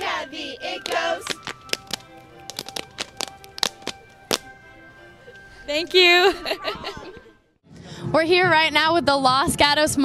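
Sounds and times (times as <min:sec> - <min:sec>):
faint musical tones: 0:00.0 - 0:07.6
sharp hand claps: 0:00.8 - 0:04.5.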